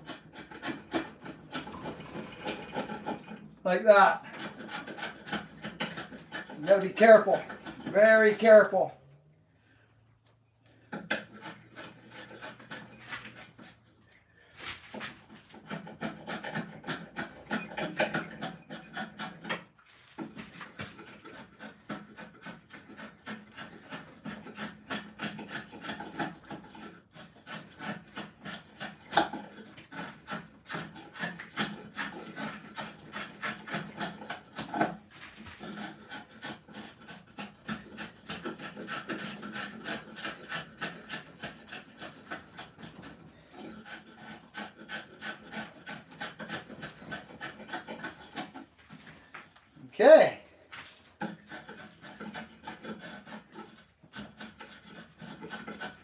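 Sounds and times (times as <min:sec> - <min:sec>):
drawknife scraping wood: 0:00.0 - 0:08.9, 0:10.7 - 0:56.0.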